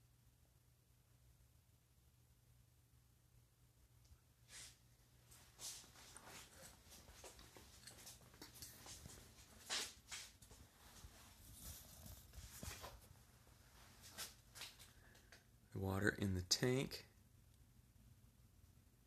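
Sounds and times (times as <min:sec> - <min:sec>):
faint clicks and rustles: 0:04.0 - 0:15.6.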